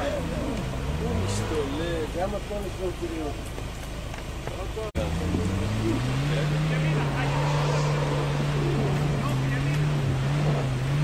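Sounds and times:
off-road vehicle engine revving: 0:00.0 - 0:11.0
noisy rush: 0:05.0 - 0:11.0.

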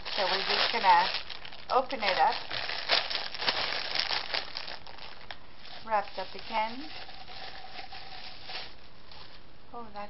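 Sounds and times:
plastic wrapping crinkling: 0:00.0 - 0:09.4.

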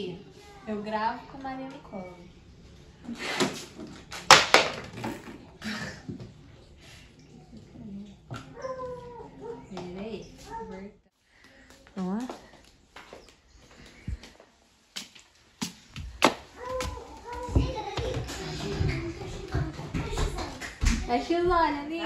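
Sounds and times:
children's voices: 0:00.0 - 0:01.9, 0:16.6 - 0:22.0
footsteps on wooden floor: 0:15.0 - 0:21.8.

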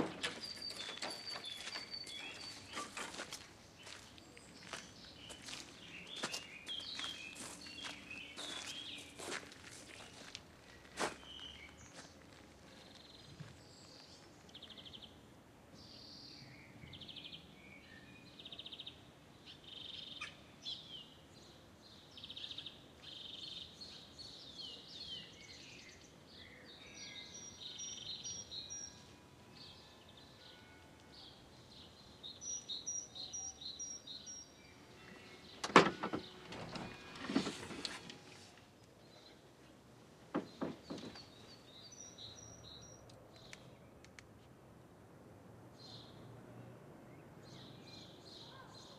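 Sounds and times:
small birds chirping: 0:00.0 - 0:35.6, 0:40.4 - 0:44.3.

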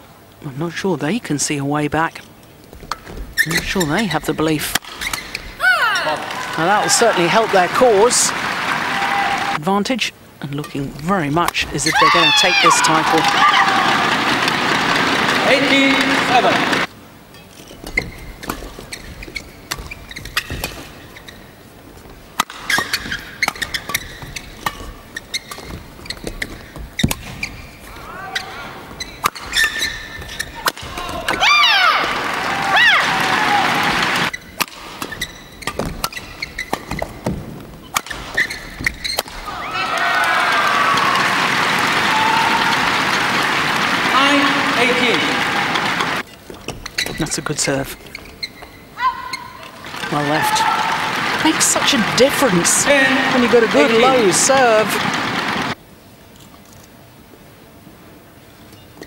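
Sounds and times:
crowd shouting and cheering: 0:05.6 - 0:09.6, 0:11.7 - 0:16.9, 0:30.6 - 0:34.3, 0:39.4 - 0:46.2, 0:49.0 - 0:55.8.

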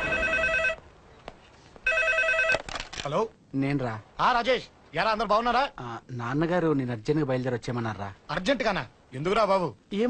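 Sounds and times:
telephone ringing electronic trill: 0:00.0 - 0:00.8, 0:01.9 - 0:02.6.

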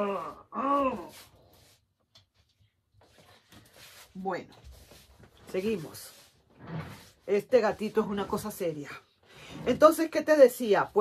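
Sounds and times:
woman sighing or grunting: 0:00.0 - 0:01.3.

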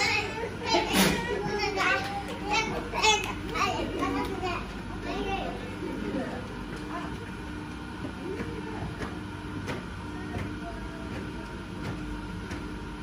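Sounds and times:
children chattering: 0:00.0 - 0:08.8.

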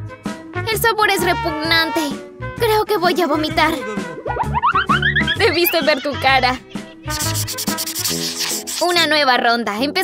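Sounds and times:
background music: 0:00.0 - 0:10.0
scratchy swish transition effect: 0:07.0 - 0:08.9.

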